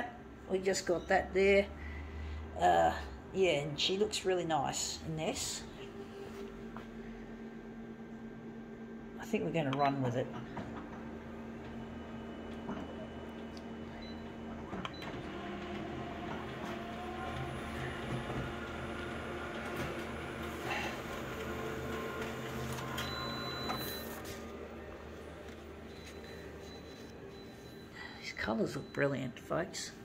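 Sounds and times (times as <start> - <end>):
copier motors and rollers running: 0.0 - 30.0.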